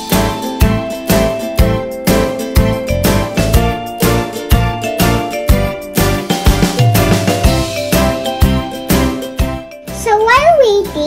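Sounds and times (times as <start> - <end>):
children's music with a beat: 0.0 - 11.0.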